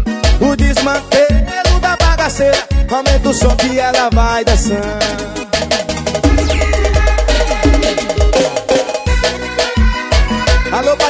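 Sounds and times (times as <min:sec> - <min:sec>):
percussion: 0:00.0 - 0:11.0
sliding deep bass notes: 0:04.5 - 0:09.2
high note riff: 0:04.6 - 0:09.6.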